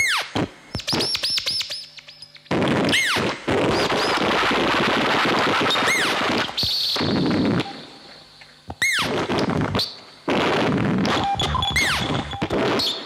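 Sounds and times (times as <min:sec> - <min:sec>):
crackling electronic noise: 0:09.0 - 0:13.0
falling chirp-like pitch sweep: 0:11.1 - 0:13.0
thin high tone: 0:11.2 - 0:12.7.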